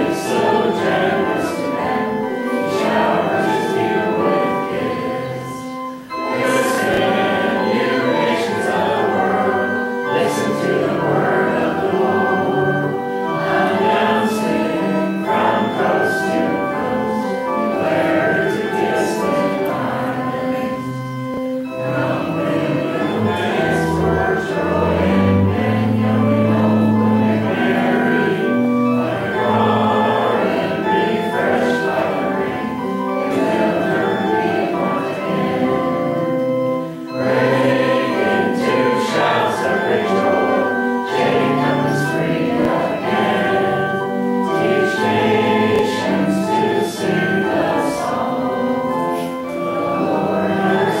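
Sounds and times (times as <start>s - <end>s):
congregation singing: 0.0s - 51.0s
instrument playing held chords: 0.0s - 51.0s.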